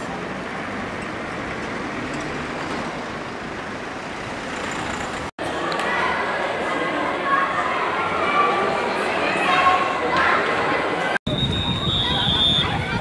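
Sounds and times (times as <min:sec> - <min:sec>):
road traffic noise: 0:00.0 - 0:13.0
crowd chatter in echoing lobby: 0:05.4 - 0:11.2.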